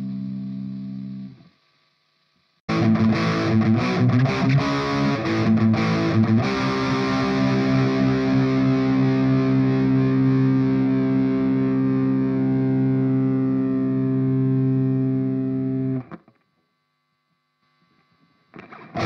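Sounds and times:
distorted electric guitar chord: 0:02.7 - 0:16.2, 0:18.6 - 0:19.0.

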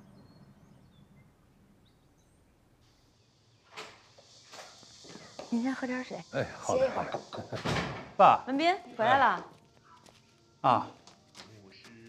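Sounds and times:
faint high bird chirps: 0:00.0 - 0:03.8.

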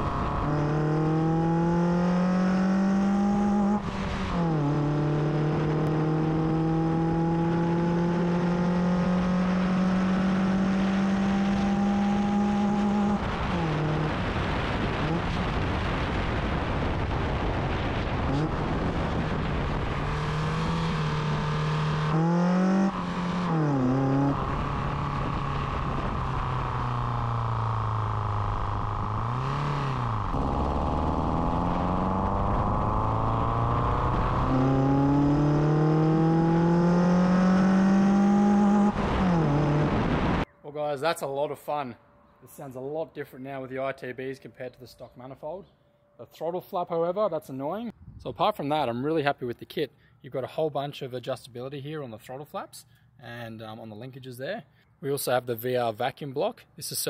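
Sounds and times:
car engine revving: 0:00.0 - 0:40.5.

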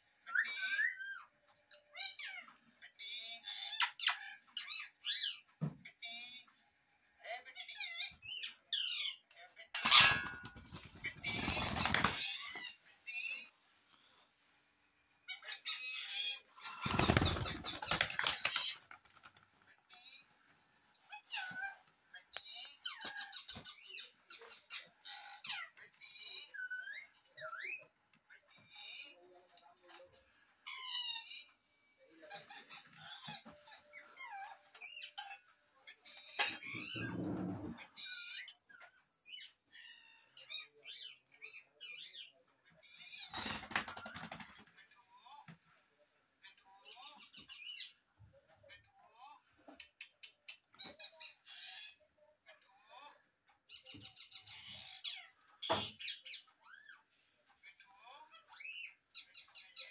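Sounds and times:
wings flapping: 0:09.8 - 0:12.2, 0:16.7 - 0:19.4, 0:43.3 - 0:44.6.

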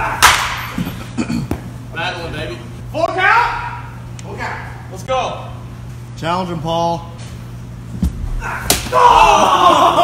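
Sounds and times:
baseball bat smacking ball: 0:00.2 - 0:00.8.

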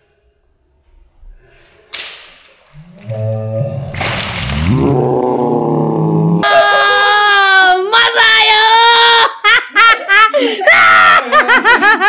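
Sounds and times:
water splashing down: 0:01.8 - 0:06.2
water balloon pop: 0:03.9 - 0:04.7.

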